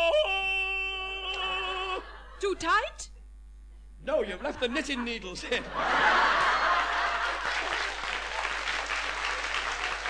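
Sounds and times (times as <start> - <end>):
man yodelling yell: 0.0 - 2.1.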